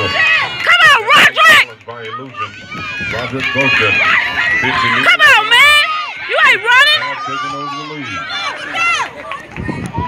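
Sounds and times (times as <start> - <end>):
spectators shouting encouragement: 0.0 - 10.0.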